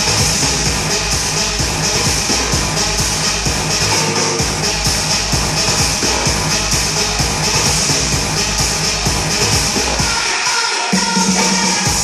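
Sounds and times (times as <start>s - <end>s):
bass line: 0.0s - 10.3s, 10.9s - 12.0s
electronic dance music: 0.0s - 12.0s
kick-drum beat: 0.0s - 12.0s.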